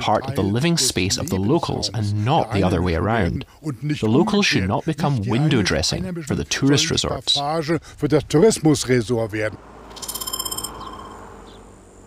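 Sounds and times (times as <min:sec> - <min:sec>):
man speaking: 0:00.0 - 0:09.6
faint outdoor hush: 0:00.0 - 0:10.1.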